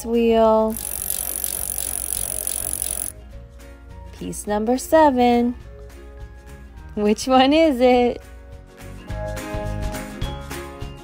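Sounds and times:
whirring with fast ticking: 0.7s - 3.1s.

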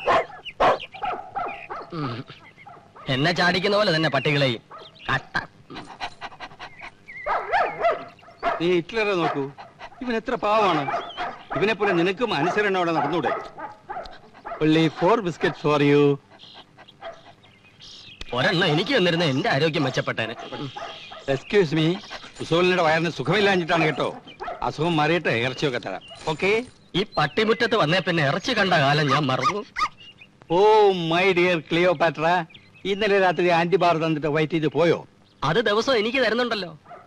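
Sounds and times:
dog barking: 0.0s - 2.0s, 2.7s - 3.3s, 4.7s - 5.0s, 7.2s - 9.8s, 10.7s - 15.7s, 17.0s - 17.4s, 20.3s - 21.4s, 23.5s - 24.8s, 29.0s - 29.9s
dogs making faint noises: 0.0s - 26.6s, 28.6s - 30.0s, 36.8s - 37.0s
man speaking: 8.6s - 13.5s, 18.3s - 29.7s.

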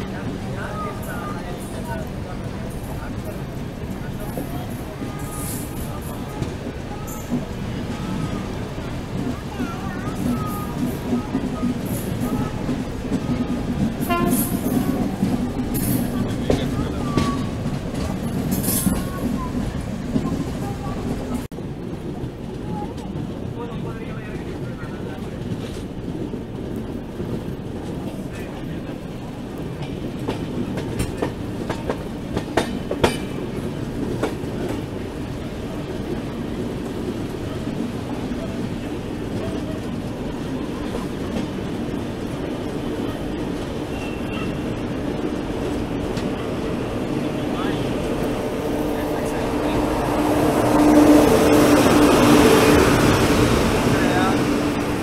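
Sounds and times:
approaching express train rumble: 0.0s - 55.0s
train wheels rumbling and clattering: 0.0s - 55.0s
train wheel squeals: 43.9s - 44.7s.

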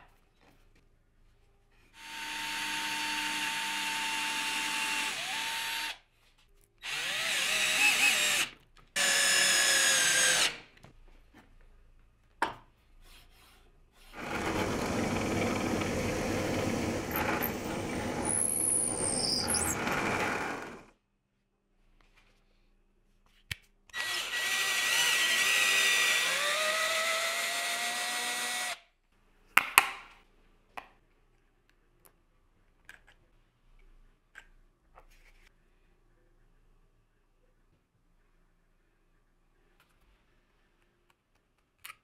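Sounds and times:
cordless drill running: 2.0s - 6.0s, 6.8s - 10.6s, 14.2s - 20.9s, 24.0s - 28.8s
drill bit boring into wood: 2.0s - 6.0s, 6.8s - 10.6s, 14.2s - 20.9s, 24.0s - 28.8s.

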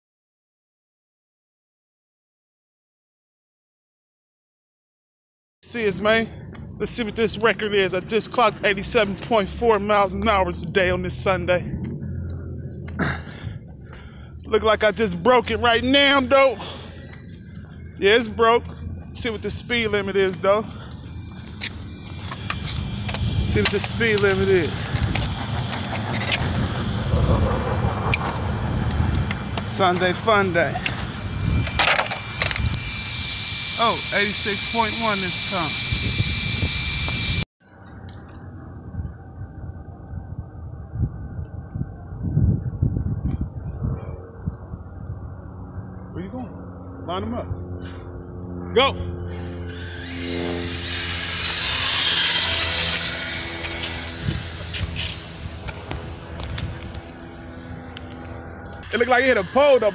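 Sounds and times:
rc car motors whining: 5.7s - 37.4s, 49.5s - 59.9s
sharp clicks: 6.4s - 26.5s.

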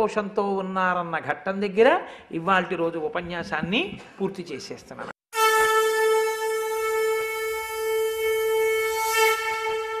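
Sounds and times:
long wind instrument note: 5.3s - 10.0s.

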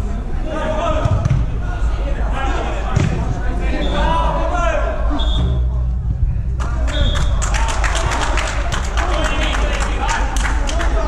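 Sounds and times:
football kicked: 2.9s - 3.3s
steady low rumble: 4.3s - 11.0s
players shouting: 6.6s - 11.0s.

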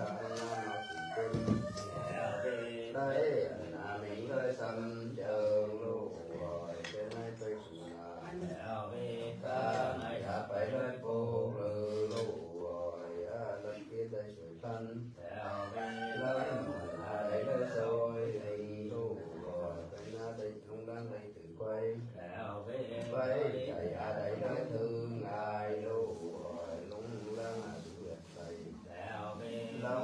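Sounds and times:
man chanting: 0.0s - 30.0s.

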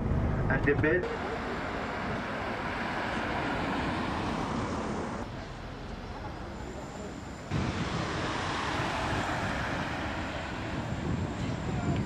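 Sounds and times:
road traffic rush: 0.0s - 12.0s.

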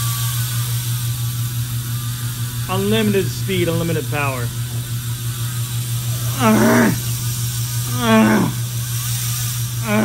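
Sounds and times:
bicycle hub freewheeling buzz: 0.0s - 10.0s.

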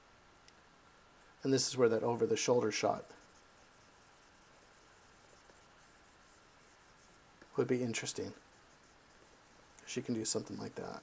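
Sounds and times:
stylus scratching on tablet: 1.2s - 11.0s.

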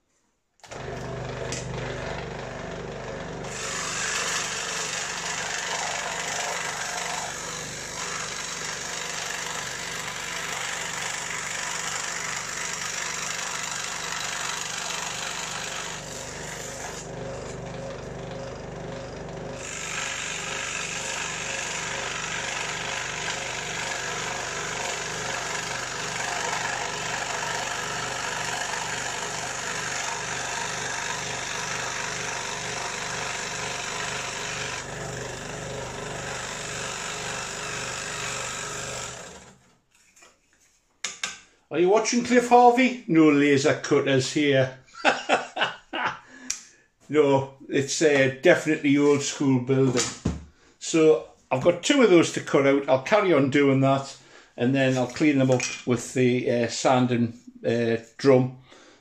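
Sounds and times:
scroll saw running: 0.6s - 39.7s
saw blade cutting plywood: 3.4s - 40.3s.

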